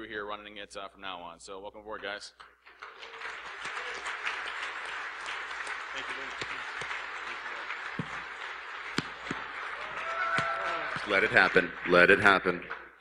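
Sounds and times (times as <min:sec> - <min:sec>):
audience applauding: 0:02.7 - 0:13.0.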